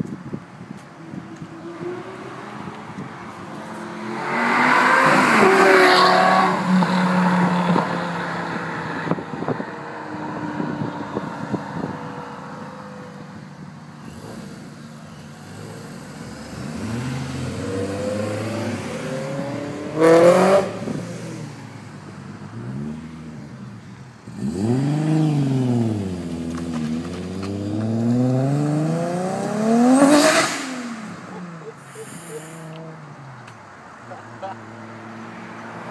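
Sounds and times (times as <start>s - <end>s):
sports car accelerating past: 1.6s - 13.2s, 15.5s - 21.9s, 24.3s - 31.6s.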